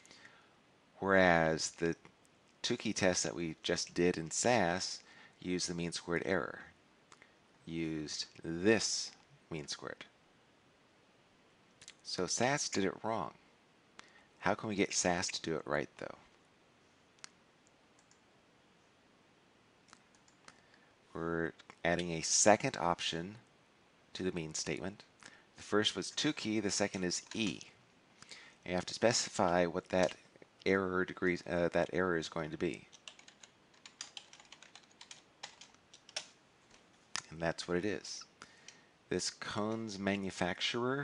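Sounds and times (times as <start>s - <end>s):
computer mouse clicks: 17.2s - 18.2s.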